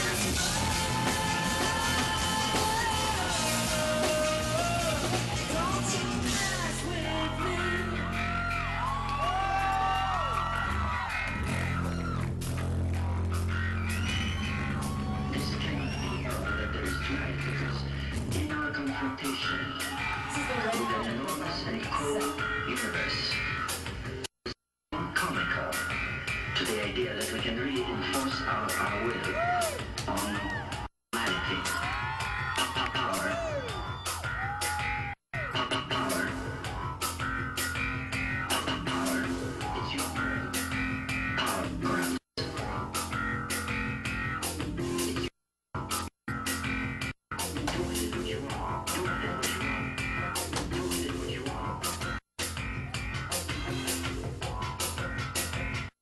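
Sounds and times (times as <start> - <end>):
steady drum beat: 0.0 - 7.0
live rock band playing: 0.0 - 8.0
bass guitar: 0.0 - 24.3, 24.9 - 56.0
drums: 0.0 - 56.0.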